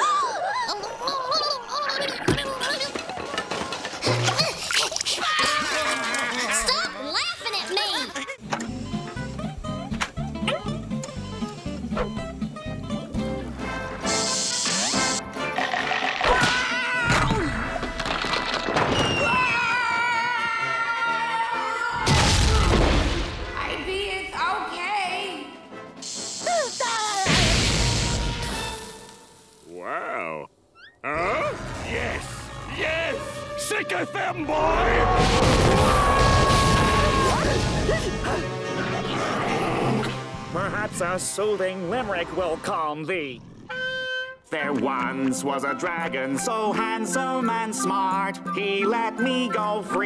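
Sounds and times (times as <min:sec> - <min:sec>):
cartoon explosion bang and rumble: 0:22.0 - 0:23.4, 0:35.2 - 0:38.0
squeaky cartoon glides: 0:30.7 - 0:31.5.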